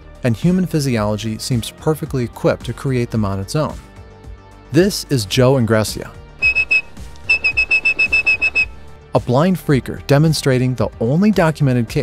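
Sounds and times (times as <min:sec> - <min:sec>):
man whistling high pips: 0:06.4 - 0:08.7.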